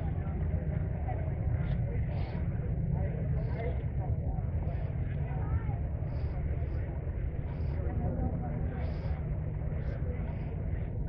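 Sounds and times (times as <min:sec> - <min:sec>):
faint chatter of people: 0:00.0 - 0:11.0.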